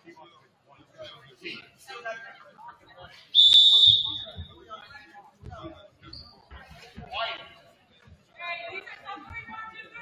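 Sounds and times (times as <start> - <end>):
faint chatter: 0.0 - 10.0
referee's whistle blast: 3.4 - 4.3.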